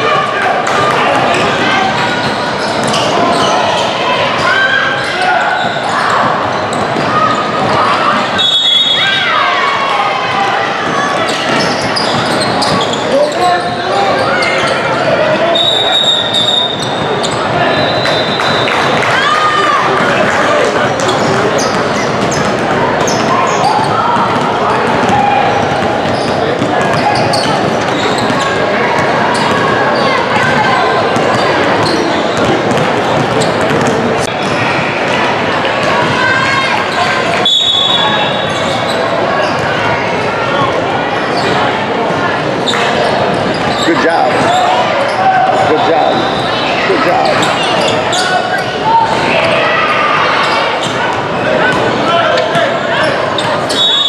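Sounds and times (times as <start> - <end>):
people talking and calling out: 0.0 - 54.0.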